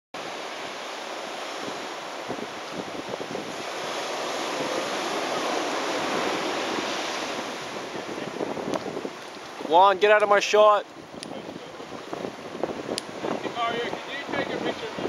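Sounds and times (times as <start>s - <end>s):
surf washing onto beach: 0.2s - 15.0s
wind on microphone: 0.2s - 15.0s.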